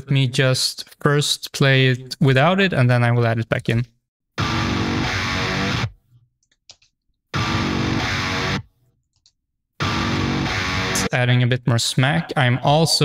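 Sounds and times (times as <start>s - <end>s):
distorted electric rhythm guitar: 4.4s - 6.0s, 7.3s - 8.7s, 9.8s - 11.4s.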